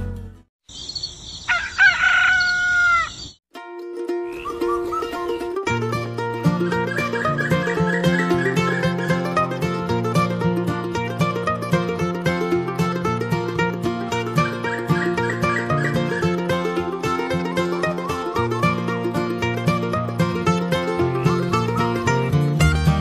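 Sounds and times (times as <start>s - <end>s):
rooster crowing: 1.3s - 3.4s
plucked string music: 3.5s - 23.0s
bass line: 5.0s - 23.0s.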